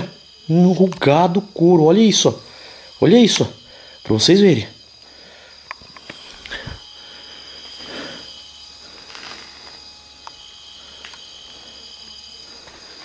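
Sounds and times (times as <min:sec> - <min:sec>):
crickets trilling: 0:00.0 - 0:13.0.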